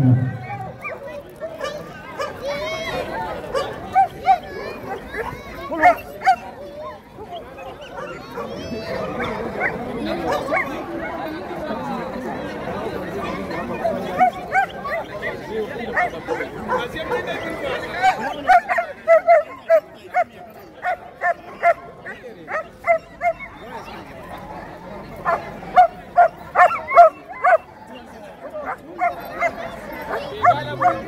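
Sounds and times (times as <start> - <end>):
crowd chatter: 0.0 - 31.0
dog barking: 3.5 - 6.4, 20.1 - 23.4, 25.2 - 27.6.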